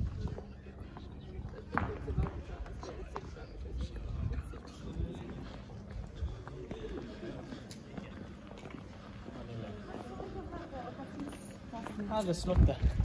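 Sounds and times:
footsteps on cobblestones: 0.0s - 13.0s
people talking: 0.0s - 13.0s.

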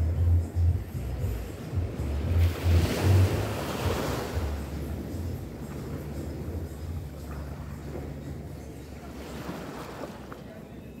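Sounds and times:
wave washing up sand: 0.0s - 10.3s
wind rumble on microphone: 0.0s - 11.0s.

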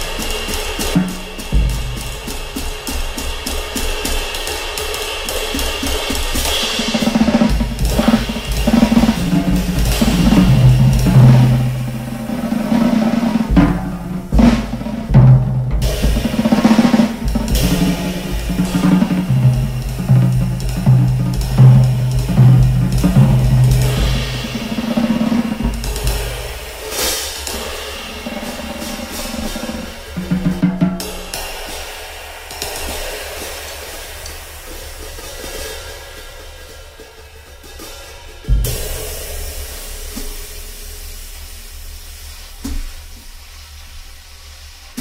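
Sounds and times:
bass drum and tom hits: 0.9s - 3.4s, 5.8s - 26.8s, 38.5s - 41.4s.

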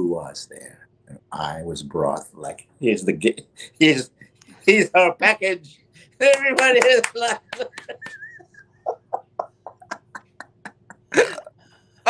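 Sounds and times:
hearty laughter: 7.2s - 11.4s.

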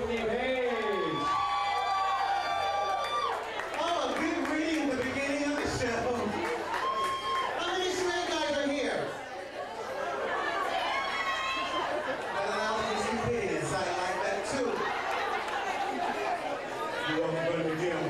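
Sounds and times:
indistinct chatter of voices: 7.6s - 18.0s.

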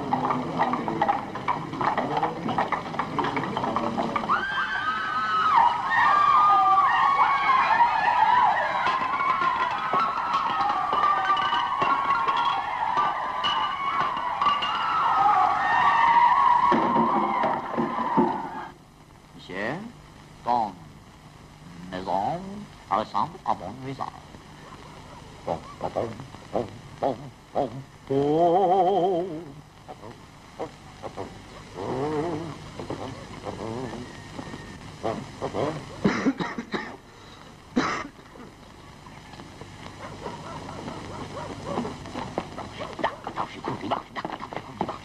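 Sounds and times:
many voices overlapping: 0.0s - 17.7s.

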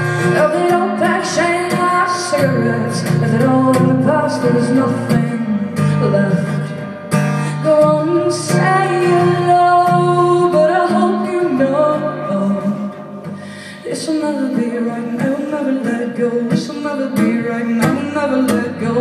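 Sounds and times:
strummed acoustic guitar: 0.0s - 19.0s
woman singing: 0.0s - 19.0s.

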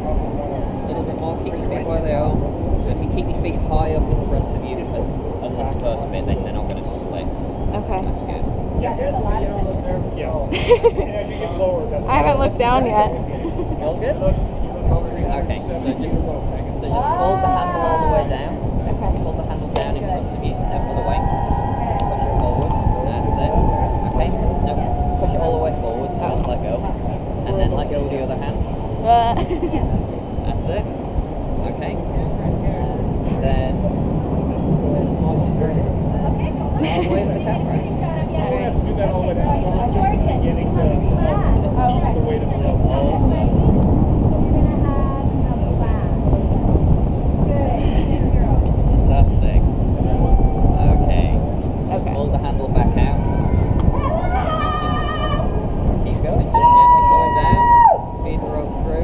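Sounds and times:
faint indistinct voices: 0.0s - 59.0s
wind rumble on microphone: 0.0s - 59.0s.

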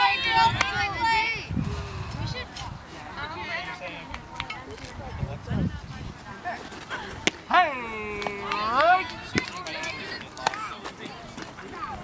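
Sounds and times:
faint background voices: 0.0s - 12.0s.

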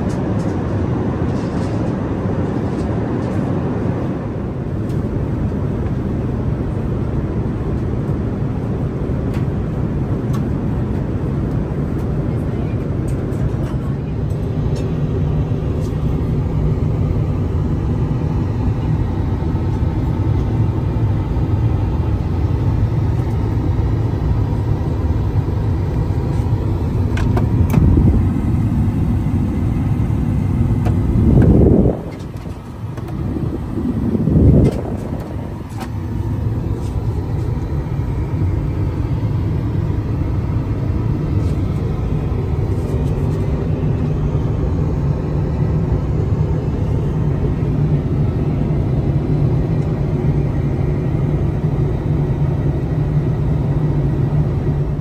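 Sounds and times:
airplane cabin noise: 0.0s - 55.0s.

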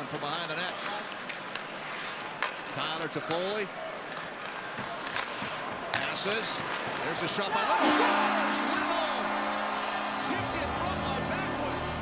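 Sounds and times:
hockey sticks and puck clacking: 0.0s - 11.9s.

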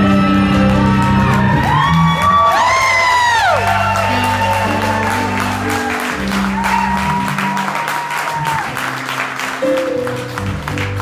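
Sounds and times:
audience whooping: 0.0s - 11.0s
live band playing: 0.0s - 11.0s.

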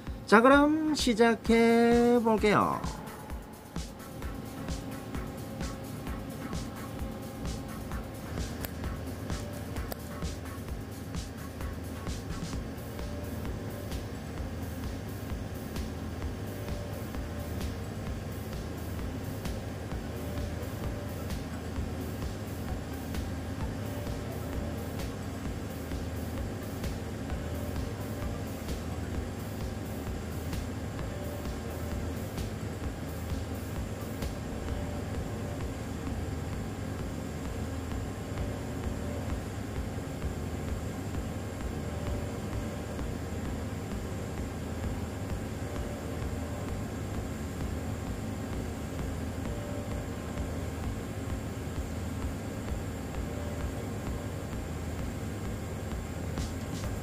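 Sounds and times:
welding arc humming: 0.0s - 57.0s.

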